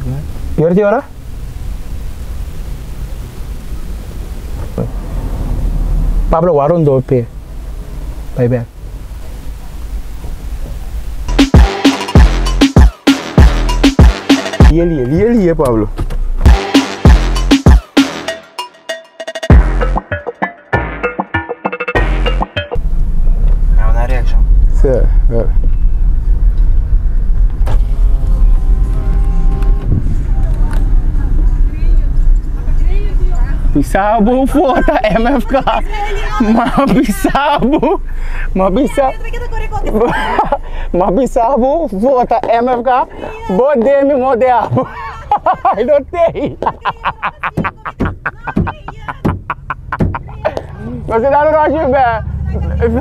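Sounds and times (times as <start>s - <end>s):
low rumble: 1.1s - 11.6s, 22.8s - 45.5s.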